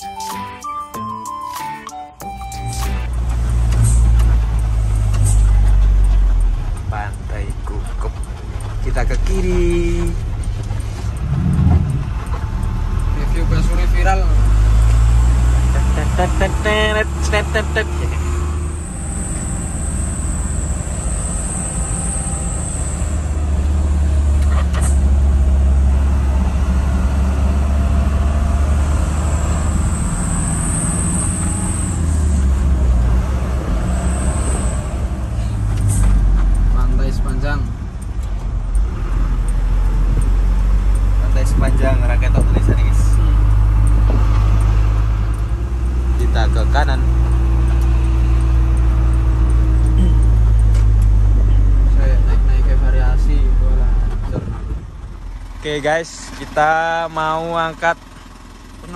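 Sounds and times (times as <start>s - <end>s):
road noise: 0.0s - 58.9s
truck engine drone: 0.0s - 58.9s
indistinct voices: 5.0s - 18.3s, 46.0s - 54.7s.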